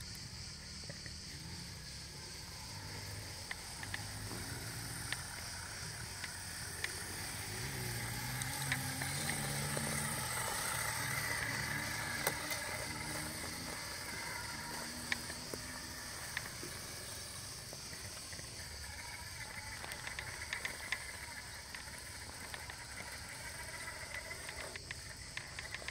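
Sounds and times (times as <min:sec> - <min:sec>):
electric motor whining: 0:00.0 - 0:25.9
small clicks and ticks: 0:00.0 - 0:25.9.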